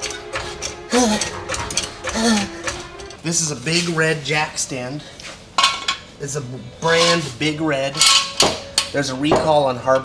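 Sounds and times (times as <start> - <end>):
floor jack clicking while pumped: 0.0 - 3.2
man grunting: 0.9 - 1.4.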